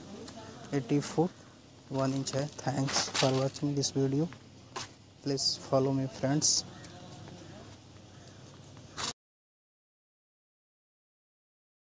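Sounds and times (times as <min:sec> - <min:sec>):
recording hiss: 0:00.0 - 0:09.2.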